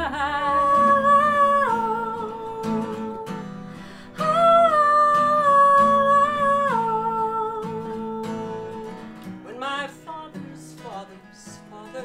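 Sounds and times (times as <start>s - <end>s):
woman singing a long note: 0.0s - 3.4s, 4.2s - 8.9s
strummed acoustic guitar: 0.0s - 12.0s.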